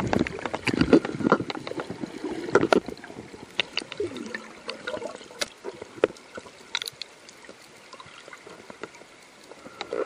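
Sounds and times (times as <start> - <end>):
underwater water noise: 0.0 - 10.0.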